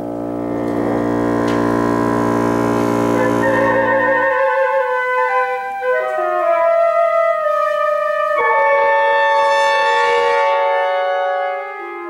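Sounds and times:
chamber ensemble sustained chord: 0.0 - 6.7.

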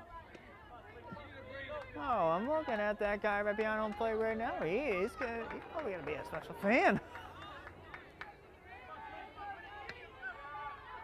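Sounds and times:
low outdoor noise: 0.0 - 11.0
spectators talking: 0.0 - 11.0.

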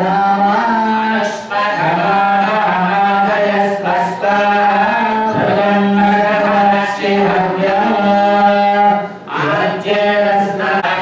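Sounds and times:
devotional mantra chanting: 0.0 - 11.0.

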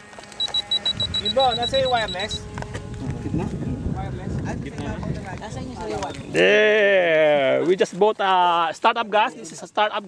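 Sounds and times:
rapid short high beeps: 0.4 - 2.5.

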